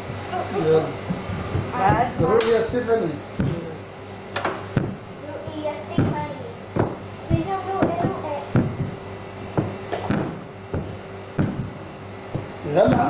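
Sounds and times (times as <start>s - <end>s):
steady low hum: 0.0s - 13.0s
rolling pin thumping on stone: 6.8s - 13.0s.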